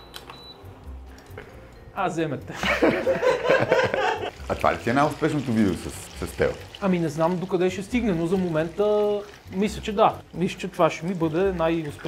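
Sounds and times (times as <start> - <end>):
meatballs sizzling in oil: 4.3 - 12.0.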